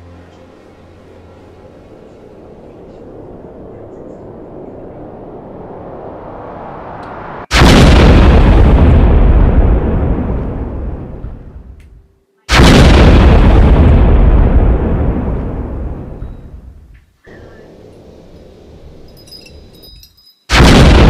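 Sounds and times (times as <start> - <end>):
faint rising noise: 0.0 - 7.5
deep boom hits: 7.5 - 16.9, 20.5 - 21.0.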